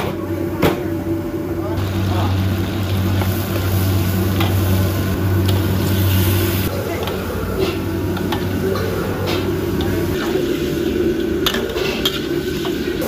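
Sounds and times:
gas burner hum: 0:00.0 - 0:13.0
meat sizzling in oil: 0:01.8 - 0:06.7.

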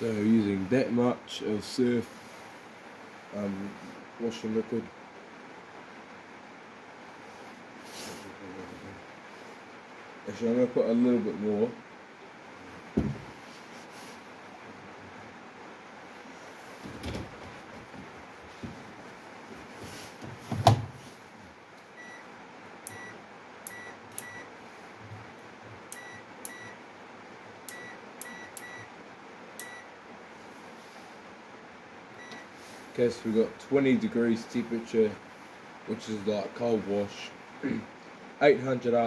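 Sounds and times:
knocks and clunks: 0:12.9 - 0:13.4, 0:20.2 - 0:21.0
washing machine drawer thud: 0:13.0 - 0:13.3, 0:20.3 - 0:21.0.

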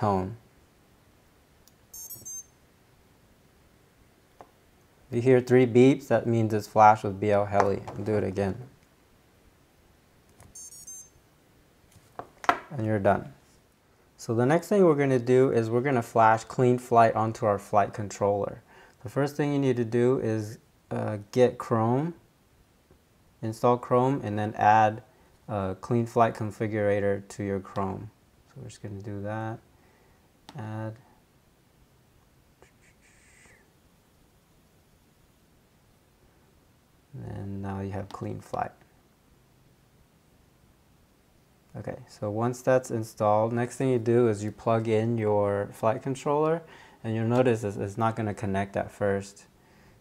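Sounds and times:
high electronic start-up beeps: 0:01.9 - 0:02.6, 0:10.6 - 0:11.2
short high blips: 0:01.9 - 0:02.6, 0:10.5 - 0:11.2.

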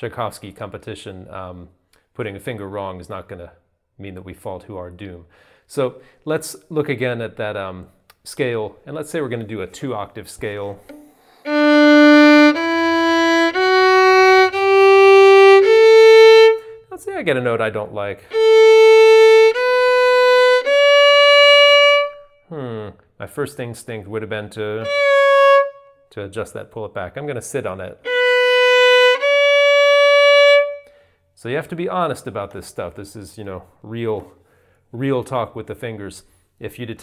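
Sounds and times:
violin playing a slow scale: 0:10.9 - 0:16.8, 0:18.3 - 0:22.4, 0:24.8 - 0:26.0, 0:28.0 - 0:31.0.

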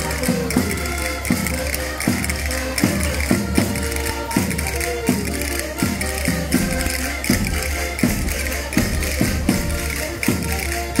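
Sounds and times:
bright tapping percussion: 0:00.0 - 0:11.0
live band playing folk dance music: 0:00.0 - 0:11.0
drum strokes: 0:00.1 - 0:11.0.

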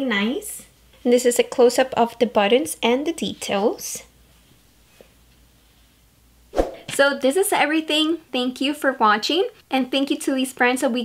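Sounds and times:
woman speaking: 0:00.0 - 0:04.1, 0:06.9 - 0:11.0.

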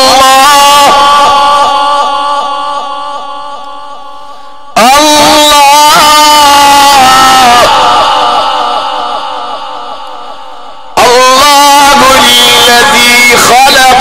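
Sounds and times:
man chanting through loudspeaker: 0:00.0 - 0:14.0.

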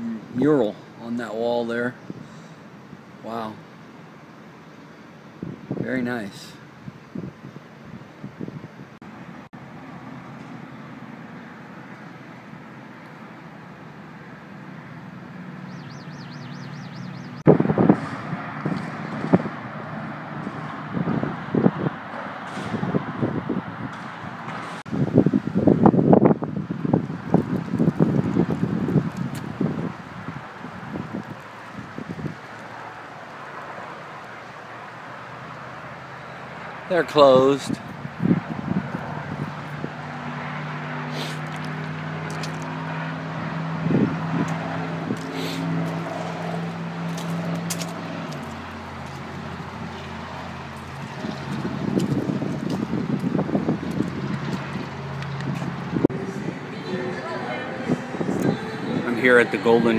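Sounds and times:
distant traffic hum: 0:00.0 - 0:59.9
wind buffeting microphone: 0:05.4 - 0:09.0, 0:17.4 - 0:33.4, 0:37.0 - 0:59.9.

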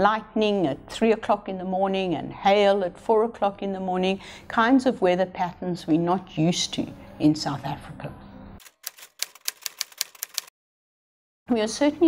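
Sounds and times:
typewriter key clacks: 0:08.6 - 0:10.5.

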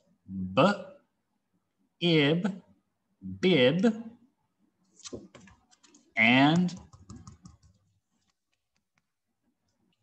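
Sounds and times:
video call audio: 0:00.0 - 0:10.0.

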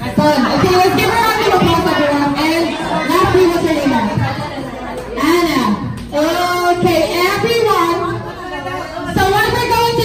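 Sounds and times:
guests chattering: 0:00.0 - 0:10.0
voices talking in a large hall: 0:00.0 - 0:10.0.

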